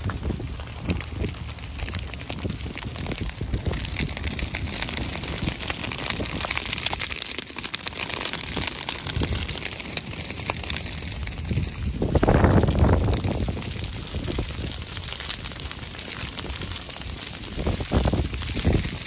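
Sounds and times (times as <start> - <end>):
grass fire crackling: 0.0 - 19.0
wind on microphone: 11.3 - 14.8, 17.5 - 19.0.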